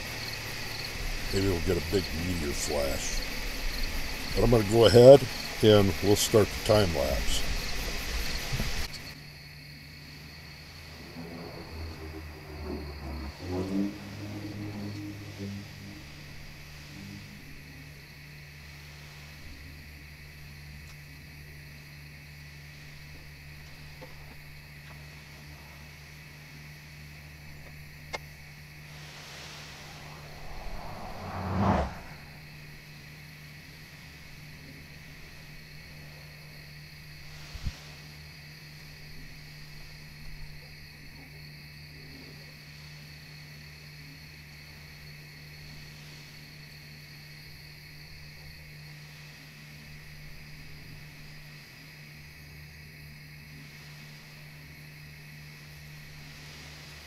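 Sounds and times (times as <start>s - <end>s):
high insect drone: 0.0s - 57.0s
low hum: 10.0s - 18.8s, 25.2s - 32.8s
brief rush: 29.1s - 32.5s.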